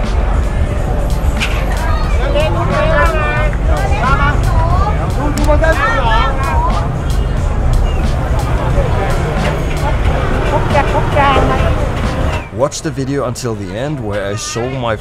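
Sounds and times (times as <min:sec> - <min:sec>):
scooter engines rumbling: 0:00.0 - 0:12.6
crowd voices talking: 0:00.0 - 0:15.0.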